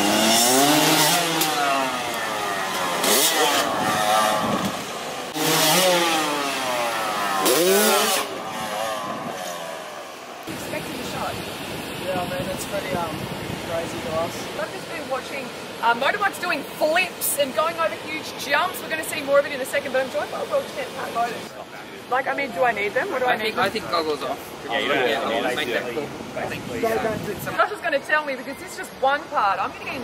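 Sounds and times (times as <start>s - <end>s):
motorbike engine revving: 0.0s - 11.8s
voices: 1.0s - 30.0s.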